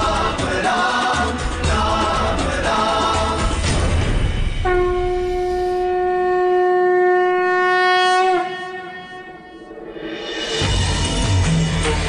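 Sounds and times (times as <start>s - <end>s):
choral music: 0.0s - 5.2s, 8.4s - 12.0s
conch shell blown: 4.6s - 10.2s.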